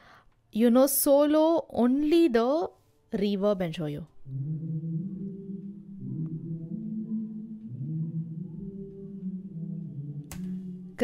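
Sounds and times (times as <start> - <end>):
muffled boomy vocal reverb: 4.2 - 11.0.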